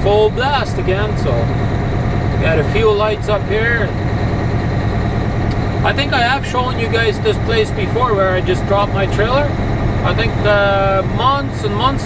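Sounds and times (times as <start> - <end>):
diesel truck engine running: 0.0 - 12.0.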